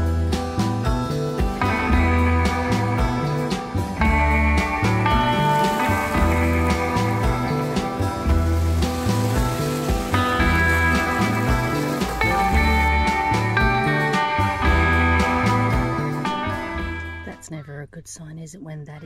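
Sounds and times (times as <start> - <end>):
background music with beat: 0.0 - 17.3.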